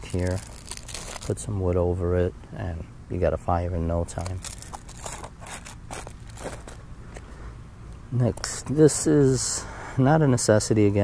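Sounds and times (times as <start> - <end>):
light scrapes rustles and clicks: 0.0 - 1.4, 4.2 - 7.3.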